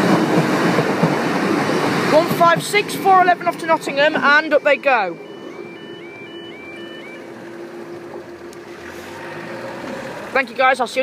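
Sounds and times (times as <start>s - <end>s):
vehicle engine: 1.8s - 11.0s
level crossing alarm tones: 2.9s - 8.5s.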